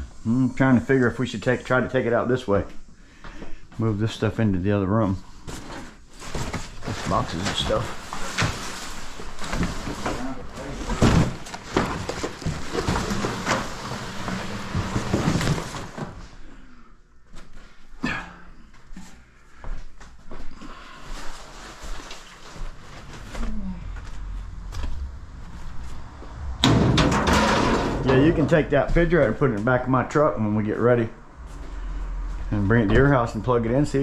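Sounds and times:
cardboard and paper rustling: 5.5 - 16.3, 21.1 - 25.3
boxes knocking onto pile: 6.2 - 16.2.

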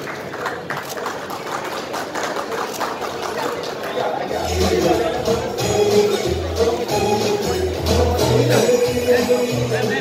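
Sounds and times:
group clapping hands: 0.0 - 4.6.

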